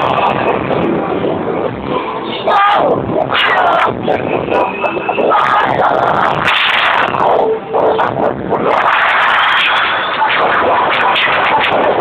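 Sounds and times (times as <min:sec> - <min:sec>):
distorted rave music: 0:00.0 - 0:12.0.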